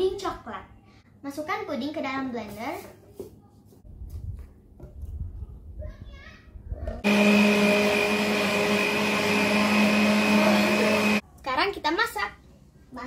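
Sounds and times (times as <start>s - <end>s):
blender motor running: 7.0s - 11.2s.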